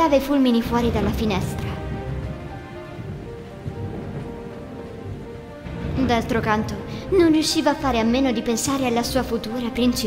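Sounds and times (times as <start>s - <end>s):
heavy rain: 0.0s - 10.0s
low thunder rumble: 0.0s - 10.0s
soft background music: 0.0s - 10.0s.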